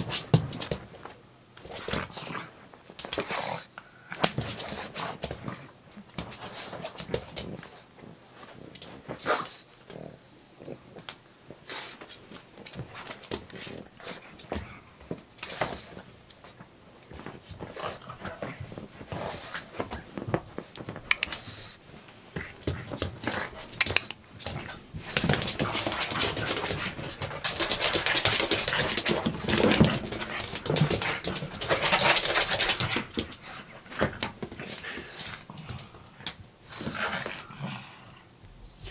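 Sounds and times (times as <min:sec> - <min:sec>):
paws scrabbling on laminate floor: 0:00.0 - 0:03.4, 0:04.2 - 0:10.1, 0:10.9 - 0:37.4
dog whimpering: 0:38.6 - 0:38.9.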